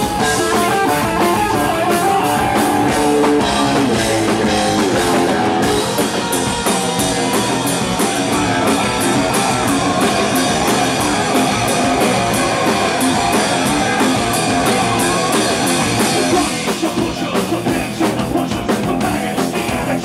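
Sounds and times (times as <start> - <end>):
electric guitar: 0.0 - 20.0
rock band playing live: 0.0 - 20.0.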